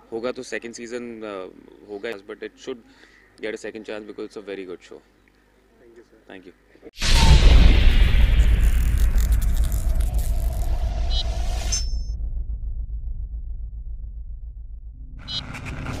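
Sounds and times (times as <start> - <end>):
hissing crackling noise: 7.0 - 11.6
deep rumble: 7.0 - 16.0
fizz: 7.2 - 10.8.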